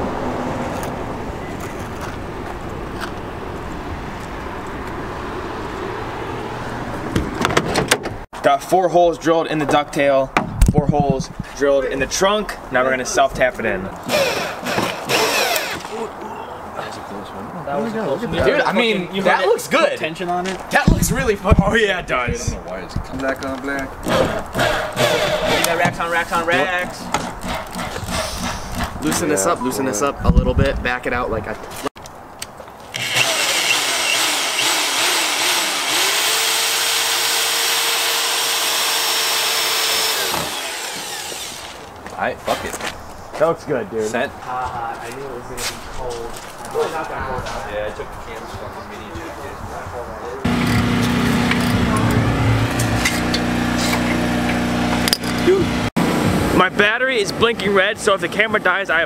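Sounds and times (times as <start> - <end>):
power drill driving screws into metal: 14.1 - 15.9, 32.9 - 41.8.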